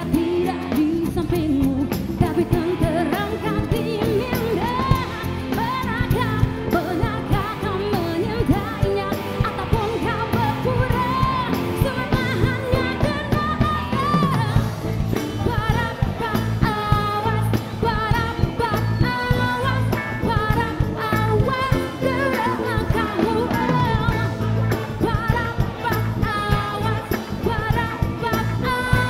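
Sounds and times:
live pop-rock band: 0:00.0 - 0:29.0
steady drum beat: 0:00.0 - 0:29.0
woman singing: 0:00.0 - 0:29.0.

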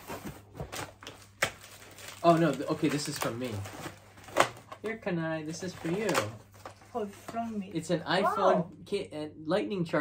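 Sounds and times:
cardboard packaging rustling: 0:00.0 - 0:04.8, 0:05.5 - 0:07.8.

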